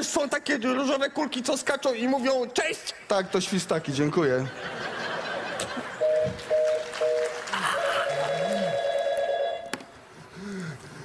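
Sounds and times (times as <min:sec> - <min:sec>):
two-note phone tone: 0:06.0 - 0:09.7
electronic telephone ringing: 0:06.0 - 0:09.8.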